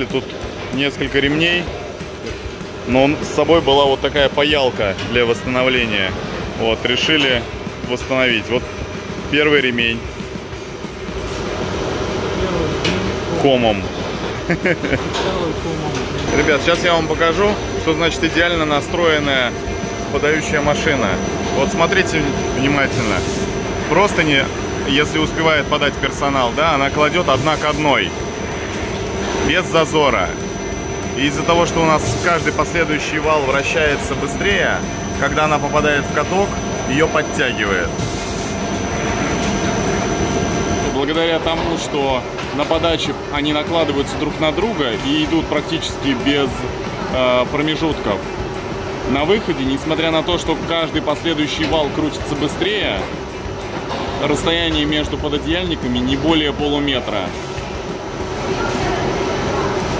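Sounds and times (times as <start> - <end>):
thin high whine: 12.2 - 42.1
ironing machine running: 14.3 - 41.1.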